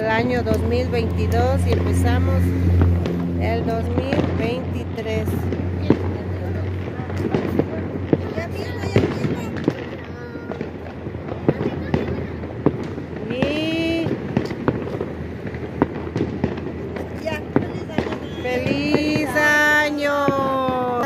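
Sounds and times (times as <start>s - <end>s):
firecrackers cracking and popping: 0.0s - 21.0s
fireworks rumble: 0.0s - 21.0s.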